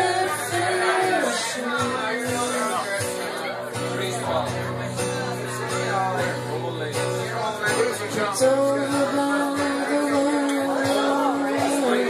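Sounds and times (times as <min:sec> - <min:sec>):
person singing: 0:00.0 - 0:02.8, 0:08.0 - 0:12.0
acoustic guitar: 0:00.0 - 0:12.0.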